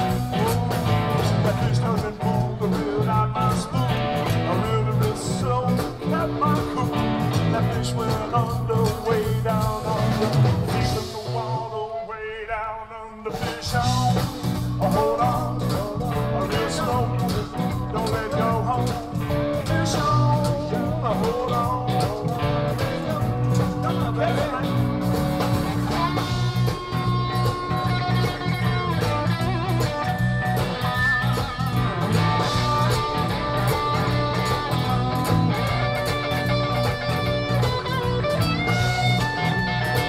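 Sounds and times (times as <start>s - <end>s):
man singing: 0.0s - 30.2s, 32.1s - 40.0s
zydeco band playing live: 0.0s - 40.0s.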